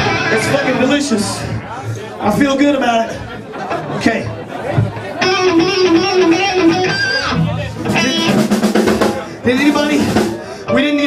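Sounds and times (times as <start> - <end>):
electric guitar through amplifier: 0.0 - 0.9, 5.2 - 9.2.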